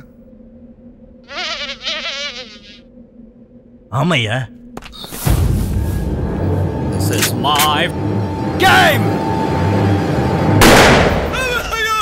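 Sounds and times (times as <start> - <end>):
mosquito buzzing: 1.1 - 3.2.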